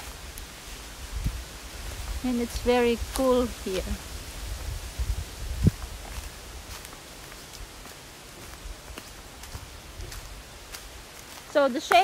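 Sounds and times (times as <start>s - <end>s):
faint outdoor rustling: 0.0s - 12.0s
light crackles: 0.0s - 12.0s
low microphone rumble: 0.8s - 6.7s.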